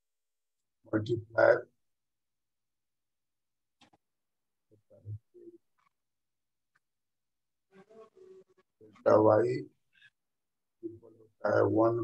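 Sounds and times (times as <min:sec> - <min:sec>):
man speaking: 0:00.9 - 0:01.8, 0:09.0 - 0:10.0, 0:10.8 - 0:12.0.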